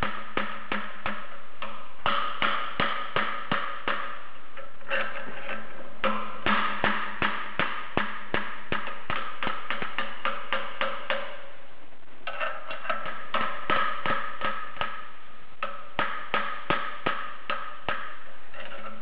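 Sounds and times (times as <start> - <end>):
hammer striking steel pry bar: 0.0 - 11.6, 12.2 - 19.0
steady low hum: 0.0 - 19.0.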